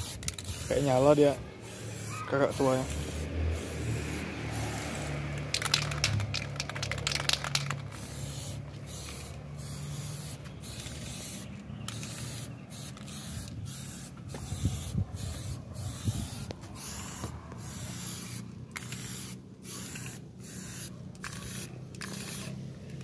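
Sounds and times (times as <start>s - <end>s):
aerosol spray can hissing: 0.0s - 22.6s.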